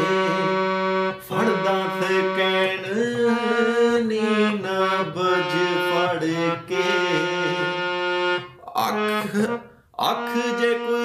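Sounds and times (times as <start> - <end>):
harmonium melody: 0.0 - 11.0.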